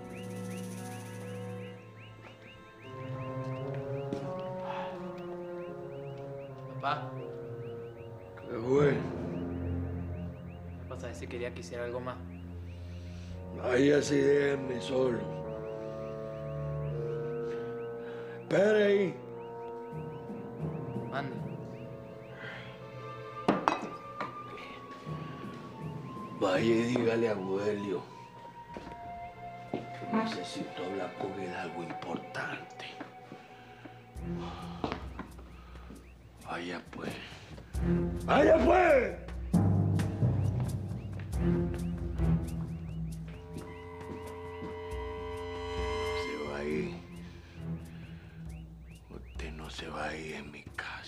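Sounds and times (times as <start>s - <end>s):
soft background music: 0.0s - 51.0s.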